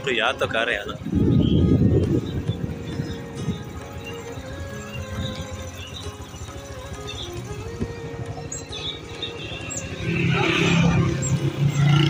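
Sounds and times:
background music: 0.0s - 12.0s
motorcycle engine running: 0.9s - 12.0s.

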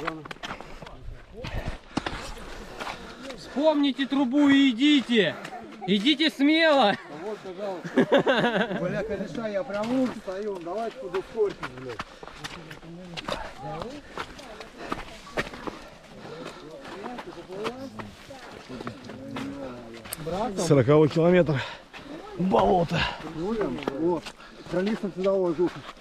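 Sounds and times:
footsteps squelching through mud: 9.7s - 26.0s.

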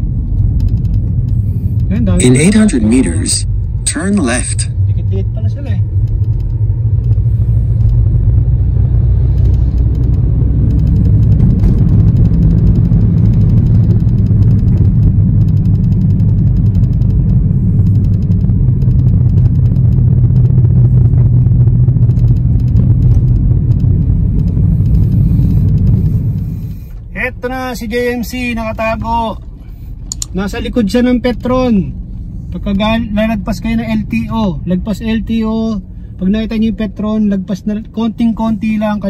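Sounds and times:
car driving rumble: 0.0s - 39.0s.

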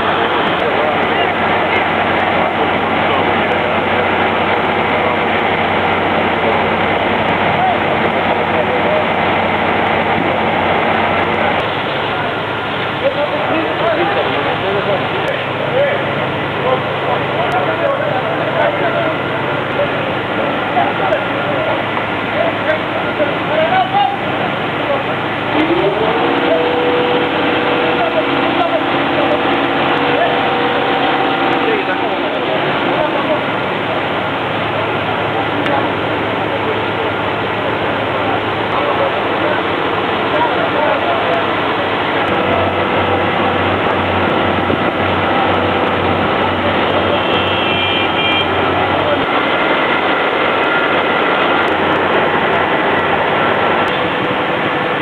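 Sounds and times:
fire truck engine humming: 0.0s - 55.0s
people's voices: 0.0s - 55.0s
rushing background noise: 0.0s - 55.0s.

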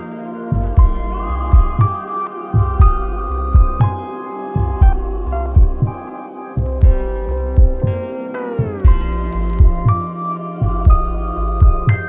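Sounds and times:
sustained synth chords: 0.0s - 12.0s
deep bass kick drums: 0.5s - 2.0s, 2.6s - 4.0s, 4.6s - 6.0s, 6.6s - 8.0s, 8.6s - 12.0s.

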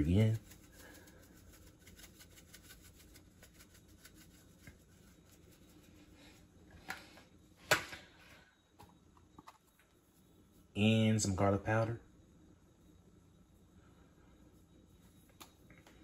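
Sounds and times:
pepper shaker rattling: 0.0s - 6.0s.

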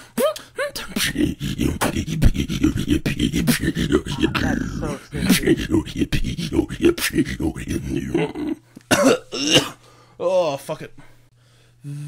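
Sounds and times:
person beatboxing: 0.2s - 8.2s.

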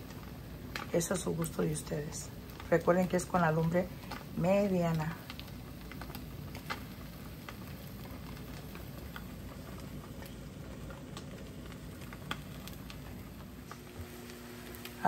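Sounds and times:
fish sizzling in a pan: 0.0s - 15.0s.

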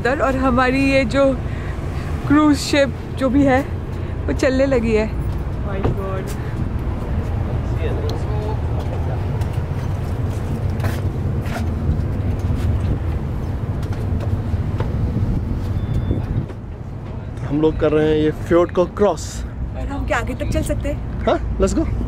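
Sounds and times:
ferry engines rumbling: 0.0s - 22.0s.

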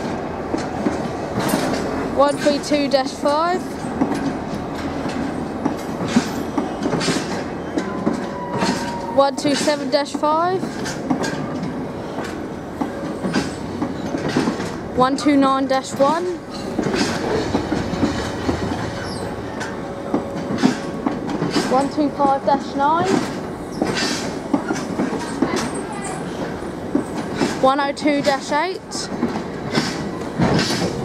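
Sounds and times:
freight train rumble: 0.0s - 31.0s
train wheels clacking over rail joints: 0.0s - 31.0s.

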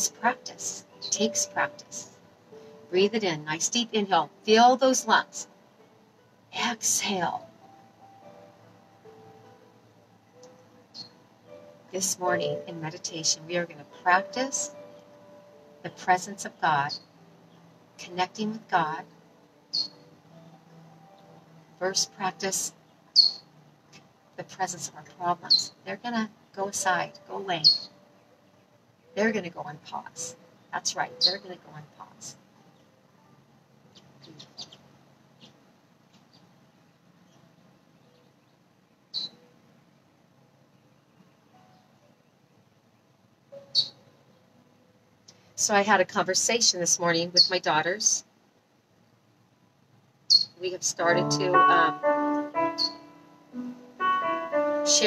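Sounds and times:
high-pitched bird chirp: 1.0s - 2.0s, 19.7s - 20.0s, 23.2s - 23.4s, 27.1s - 27.9s, 31.1s - 31.5s, 39.1s - 39.4s, 43.7s - 44.0s, 50.3s - 52.0s, 52.6s - 53.1s
bird chirps: 10.9s - 11.2s, 19.7s - 20.0s, 23.2s - 23.5s, 27.6s - 28.0s, 31.1s - 31.5s, 39.1s - 39.5s, 43.6s - 44.0s, 50.3s - 50.6s, 52.6s - 53.1s.

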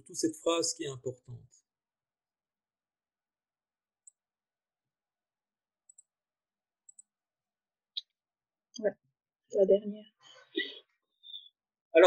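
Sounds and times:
computer mouse clicks: 5.8s - 6.1s, 6.8s - 7.1s.

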